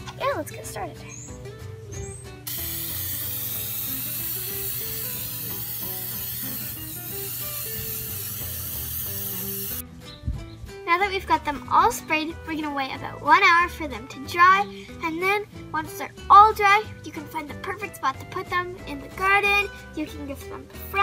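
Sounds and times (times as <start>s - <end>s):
background music: 0.0s - 21.0s
aerosol can spraying hiss: 2.5s - 9.8s.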